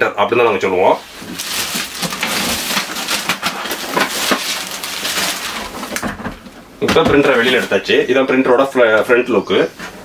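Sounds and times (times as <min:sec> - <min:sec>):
plastic bag crackling: 0:01.0 - 0:06.2, 0:07.2 - 0:08.1.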